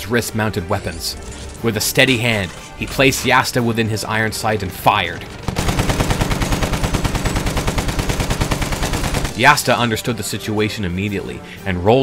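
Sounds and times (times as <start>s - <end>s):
rapid machine-gun fire: 5.2s - 9.7s.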